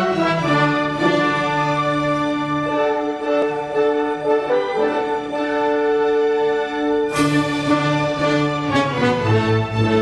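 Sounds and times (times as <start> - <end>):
orchestra playing sustained chords: 0.0 - 10.0.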